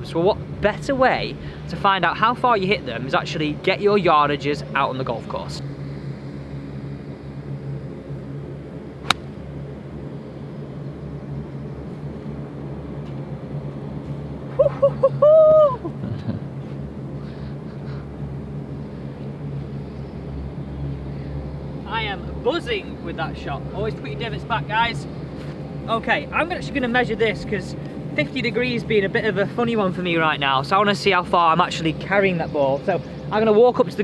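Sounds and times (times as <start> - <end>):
golf club striking ball: 9.0 - 9.4
loud high-pitched call: 14.6 - 15.9.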